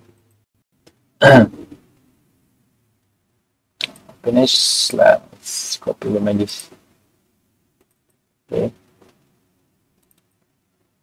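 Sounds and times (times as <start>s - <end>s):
man clearing his throat: 1.2s - 1.6s.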